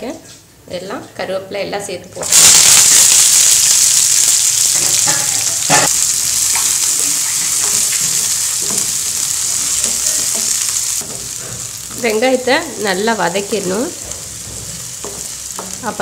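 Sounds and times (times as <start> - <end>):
vegetables sizzling in hot oil: 2.2 - 16.0.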